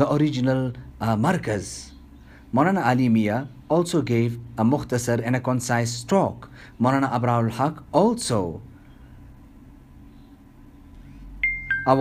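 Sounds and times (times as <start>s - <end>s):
two-note electronic chime: 11.4s - 12.0s.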